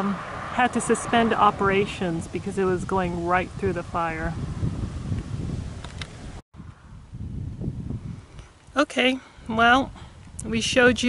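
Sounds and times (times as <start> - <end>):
wind buffeting microphone: 0.0 - 8.8, 9.4 - 11.0.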